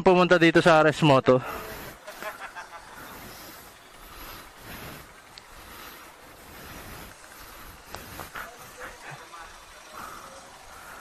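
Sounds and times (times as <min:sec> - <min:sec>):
steady rushing noise: 0:01.4 - 0:11.0.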